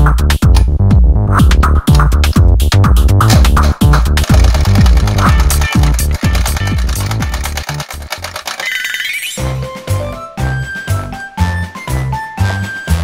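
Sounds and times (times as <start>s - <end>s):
kick drum: 0.0s - 7.4s
electronic dance music: 3.4s - 9.4s.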